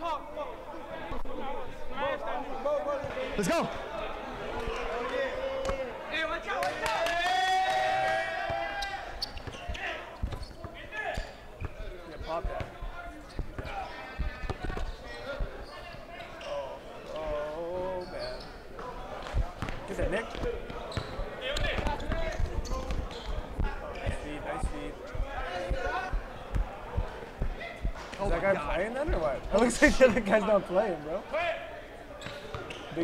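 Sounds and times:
players talking and calling out: 0.0 - 33.0
basketball bouncing on court: 8.4 - 16.3, 19.3 - 28.1.

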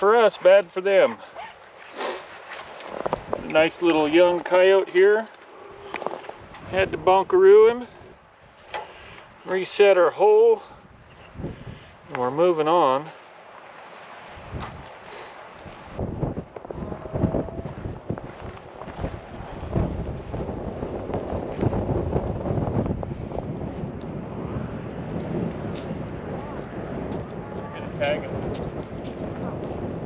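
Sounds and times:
wind buffeting microphone: 2.4 - 12.8, 13.5 - 30.0.

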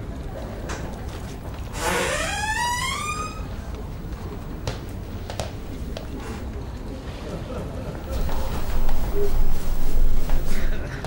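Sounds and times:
door hinge creaking: 0.4 - 3.8, 8.0 - 10.8.

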